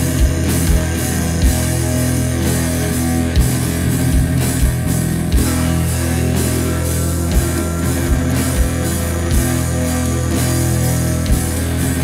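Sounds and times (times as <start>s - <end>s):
heavy rock song: 0.0s - 12.0s.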